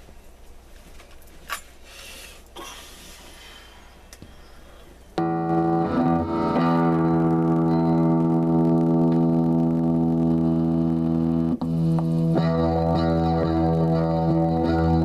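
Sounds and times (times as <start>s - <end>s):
electric guitar with effects: 5.2s - 15.0s.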